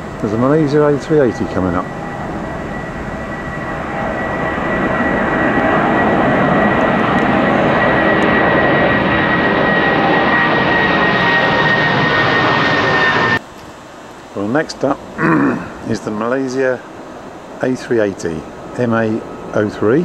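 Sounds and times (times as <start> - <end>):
jet airliner roaring overhead: 0.0 - 13.4, 14.8 - 20.0
high jet whine: 0.0 - 20.0.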